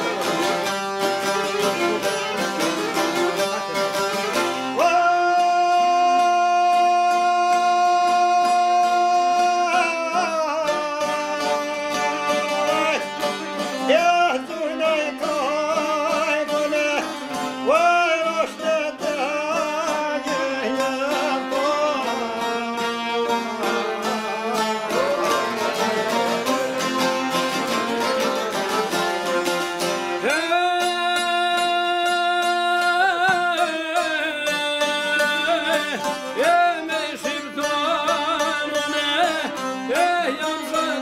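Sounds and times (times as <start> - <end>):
man singing folk song: 0.0 - 41.0
plucked lute: 0.0 - 41.0.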